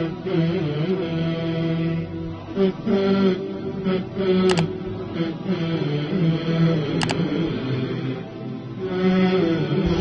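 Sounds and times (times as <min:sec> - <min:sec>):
music with long held notes: 0:00.0 - 0:10.0.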